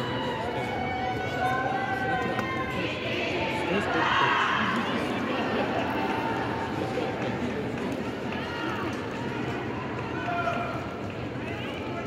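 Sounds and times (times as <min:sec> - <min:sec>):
crowd talking and calling out: 0:00.0 - 0:12.0.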